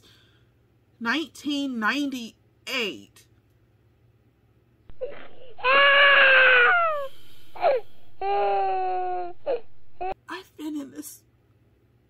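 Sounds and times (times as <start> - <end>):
woman crying wail: 5.0 - 9.6.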